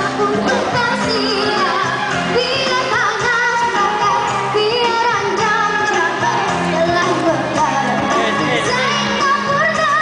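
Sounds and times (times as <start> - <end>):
accompanying music: 0.0 - 10.0
girl singing into a microphone: 0.0 - 10.0.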